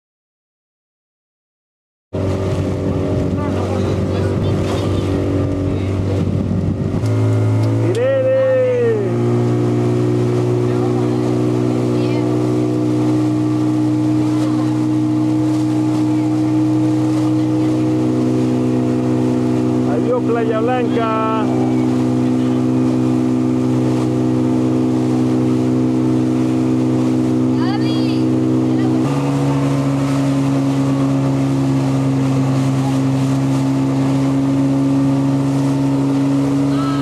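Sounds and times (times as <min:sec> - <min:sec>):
motorboat engine running: 0:02.2 - 0:37.0
water and wind noise: 0:02.2 - 0:37.0.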